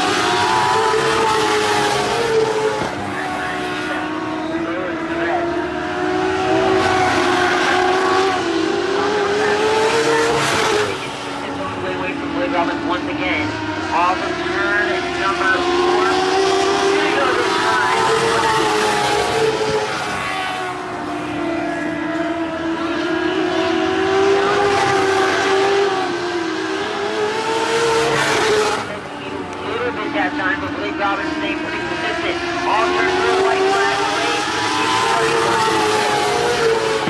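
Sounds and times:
race car engines at high revs: 0:00.0 - 0:37.0.

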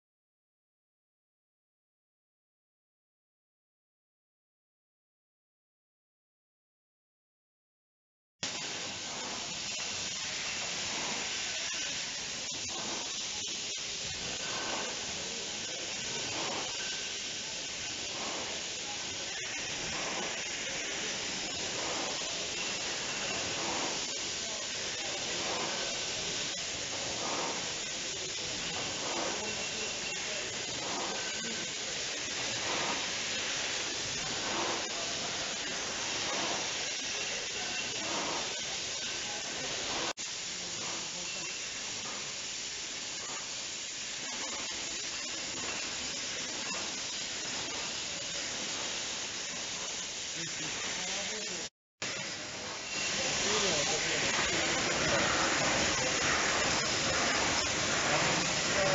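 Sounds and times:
hiss of spray and air: 0:08.4 - 0:58.9
regular machine clatter: 0:08.5 - 0:42.4, 0:43.0 - 0:51.2, 0:52.1 - 0:58.9.

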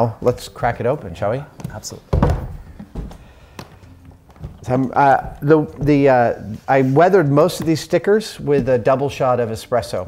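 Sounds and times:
heavy wooden thunk: 0:02.1 - 0:06.2.

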